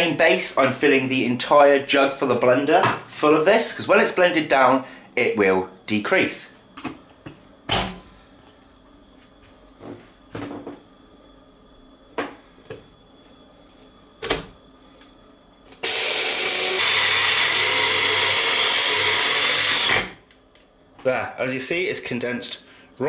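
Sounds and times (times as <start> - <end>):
blender grinding: 15.8 - 20.2.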